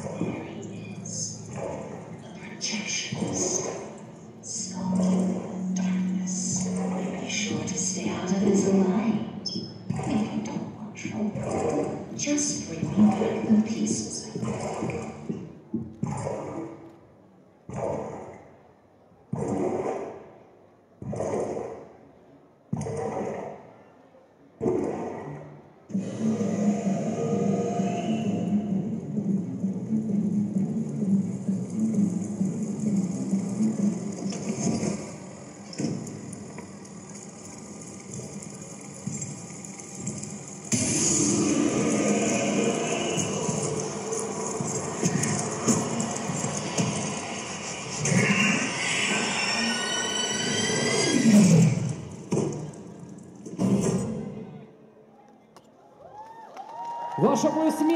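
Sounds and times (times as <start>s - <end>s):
dense low drone: 24.6s - 49.8s.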